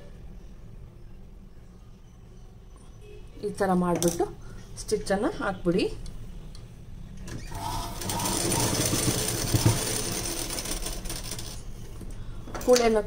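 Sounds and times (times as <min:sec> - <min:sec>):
sewing machine stitching: 0:07.4 - 0:11.7.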